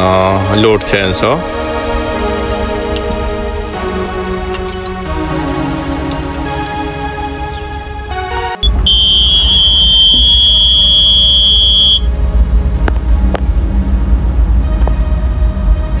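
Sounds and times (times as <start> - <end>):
low rumble: 7.5 - 16.0
warning buzzer high-pitched tone: 8.6 - 12.1.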